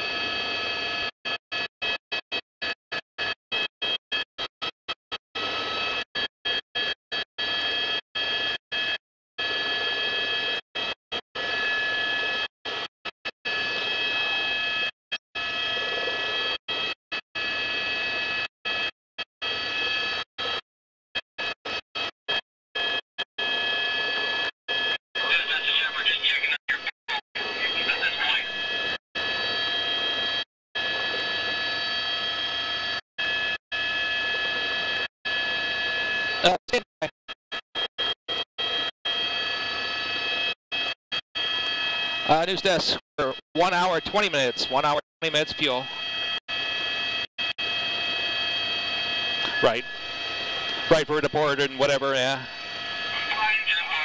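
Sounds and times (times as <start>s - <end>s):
helicopter turbine whine: 0.0s - 2.0s, 5.4s - 20.6s, 21.7s - 36.9s, 37.8s - 54.0s
radio chatter: 25.2s - 28.8s, 36.4s - 37.1s, 42.3s - 46.0s, 49.4s - 54.0s.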